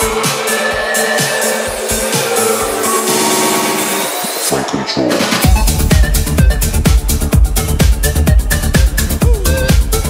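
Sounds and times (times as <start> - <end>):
electronic dance beat: 0.0 - 10.0
held synth tones: 0.4 - 4.5.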